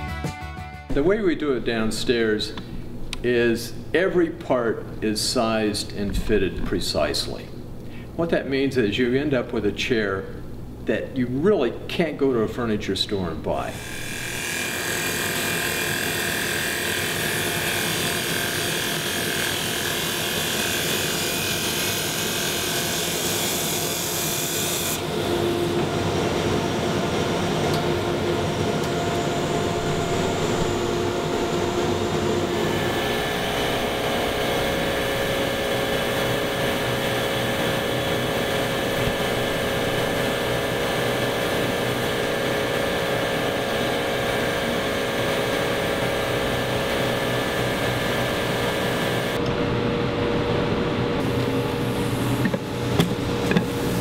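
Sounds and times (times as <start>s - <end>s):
wood lathe humming: 13.7s - 49.4s.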